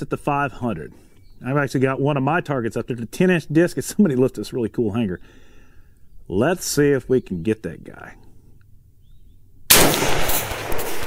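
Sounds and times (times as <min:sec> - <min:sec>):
rifle shot echoing: 0:09.7 - 0:11.0.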